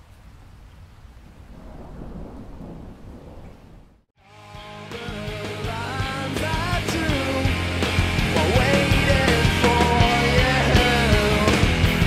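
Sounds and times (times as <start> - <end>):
steady rain: 0.0 - 4.1
low thunder rumble: 0.2 - 4.1
rock band playing: 4.2 - 12.0.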